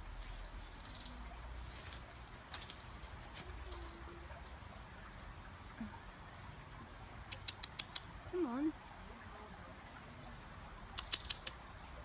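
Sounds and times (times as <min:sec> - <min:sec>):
robin tic calls: 0:00.2 - 0:01.3, 0:10.8 - 0:11.7.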